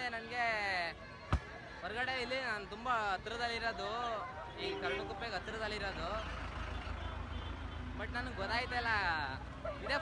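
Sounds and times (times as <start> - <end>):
faint crowd chatter: 0.0 - 7.6
truck engine rumble: 4.5 - 9.7
person speaking: 4.6 - 5.9.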